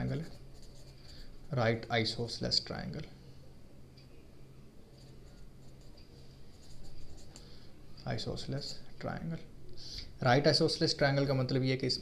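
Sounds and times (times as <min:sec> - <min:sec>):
pen scratching on paper: 0:00.0 - 0:01.3.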